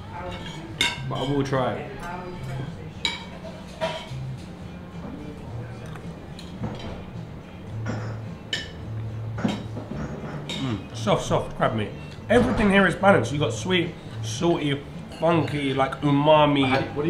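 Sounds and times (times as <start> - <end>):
quiet background music: 0.0 - 17.0
cutlery clinking against dishes: 0.2 - 4.5, 5.8 - 7.0, 7.8 - 8.8, 9.4 - 10.9, 16.5 - 17.0.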